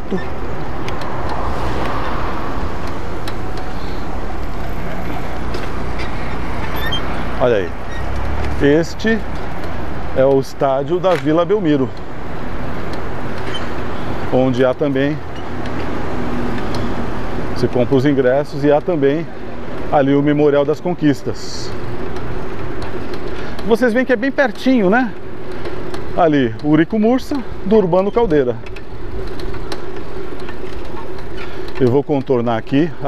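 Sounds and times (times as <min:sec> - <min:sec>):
bicycle road noise: 0:00.0 - 0:33.0
traffic: 0:00.0 - 0:33.0.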